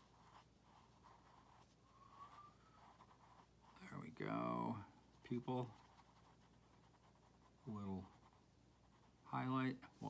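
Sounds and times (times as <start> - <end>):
pencil scratching on paper: 0.0 - 9.6.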